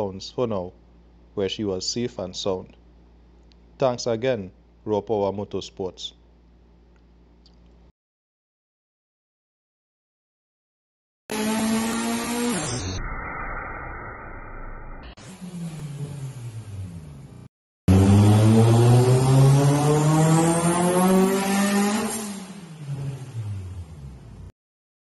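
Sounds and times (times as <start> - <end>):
car engine revving on a dyno: 11.3 - 13.0, 15.2 - 17.1, 17.9 - 24.4.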